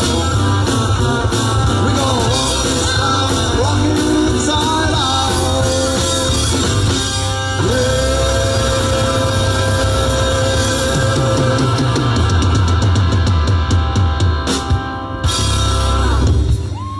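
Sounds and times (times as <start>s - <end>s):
fast drum and cymbal hits: 0.0s - 16.9s
live rock band playing: 0.0s - 16.9s
moving bass line: 0.0s - 16.9s.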